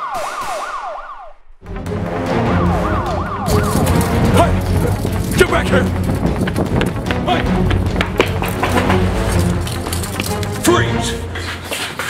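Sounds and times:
police siren yelping: 0:00.0 - 0:01.4, 0:02.3 - 0:05.2
music with steady bass: 0:01.7 - 0:11.3.

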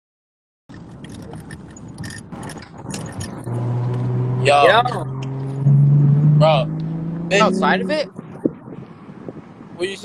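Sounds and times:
clicks and rustles: 0:00.7 - 0:03.4.

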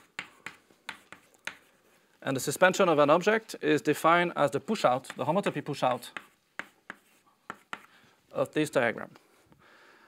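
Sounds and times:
chalk tapping and scratching blackboard: 0:00.0 - 0:02.0, 0:04.9 - 0:08.0.

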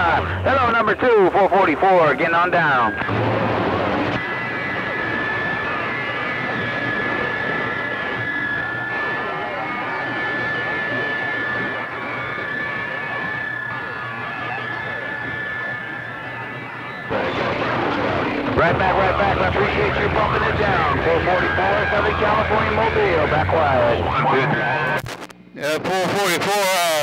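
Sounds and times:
radio band noise: 0:00.0 - 0:27.0
steady high whistle: 0:04.2 - 0:17.3
faint unreadable radio voices: 0:18.5 - 0:27.0.

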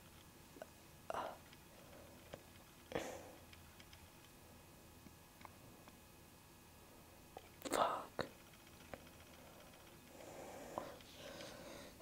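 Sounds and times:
breathy whispered voice: 0:07.6 - 0:08.4.

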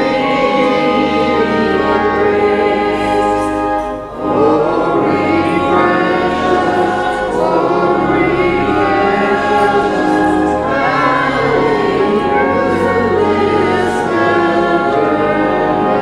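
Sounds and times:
choir and congregation singing hymn: 0:00.0 - 0:16.0.

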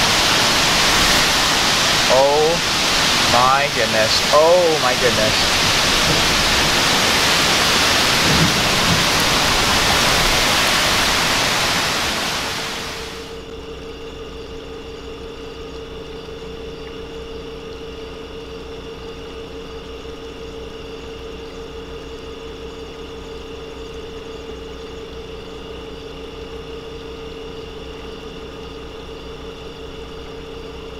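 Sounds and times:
heavy rain: 0:00.0 - 0:13.3
wind thrashing trees: 0:00.0 - 0:13.3.

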